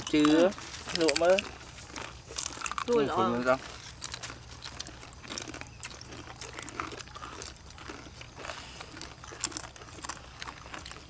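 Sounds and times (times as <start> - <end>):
chips crackling and rustling: 0.0 - 11.0
people biting crunchy chips: 0.0 - 11.0.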